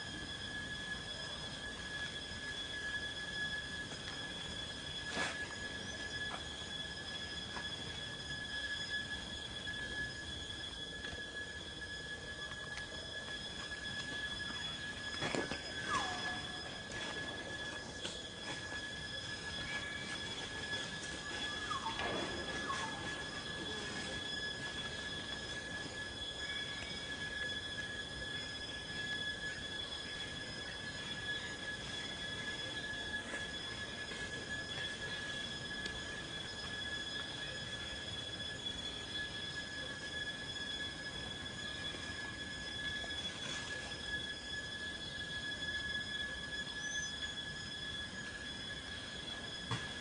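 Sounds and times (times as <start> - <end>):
forest insects droning: 0.0 - 50.0
short falling squeals: 0.0 - 50.0.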